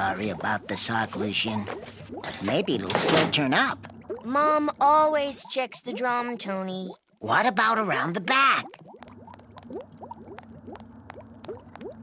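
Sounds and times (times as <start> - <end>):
low steady hum: 0.0 - 12.0
cartoon bubbling blips: 0.2 - 12.0.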